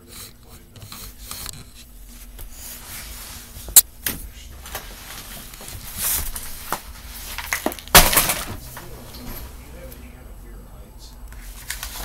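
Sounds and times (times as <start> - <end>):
rustling of objects: 0.2 - 10.0, 11.4 - 12.0.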